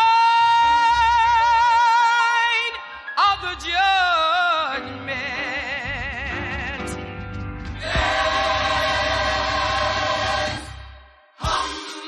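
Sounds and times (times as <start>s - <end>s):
gospel choir singing: 7.8s - 12.0s.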